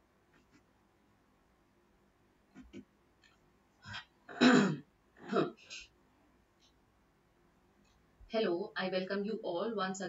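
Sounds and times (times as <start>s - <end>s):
woman clearing her throat: 3.9s - 5.6s.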